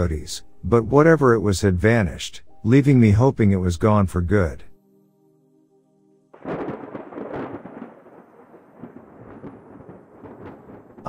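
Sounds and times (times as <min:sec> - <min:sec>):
thunder crack and rumble: 0:06.4 - 0:11.0.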